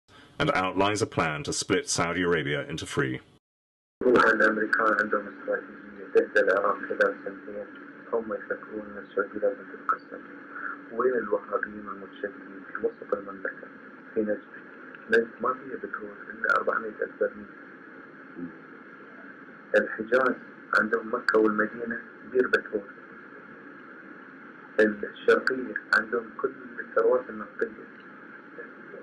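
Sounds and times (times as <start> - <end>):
steady background hiss: 0.1 - 3.4, 4.0 - 29.0
steady low hum: 0.1 - 3.4, 4.0 - 29.0
muffled speech: 0.4 - 3.2, 4.0 - 29.0
person talking: 0.4 - 3.4, 4.0 - 13.6, 15.1 - 17.5, 19.8 - 22.9, 24.8 - 27.8.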